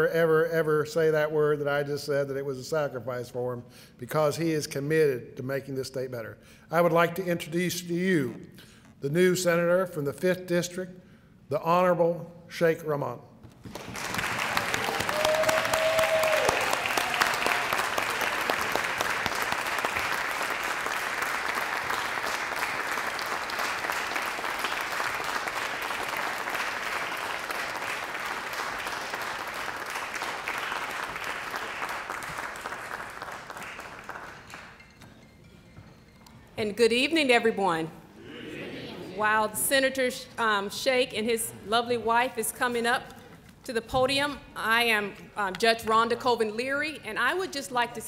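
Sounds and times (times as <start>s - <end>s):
audience applauding: 13.7s - 34.8s
person cheering: 14.8s - 17.7s.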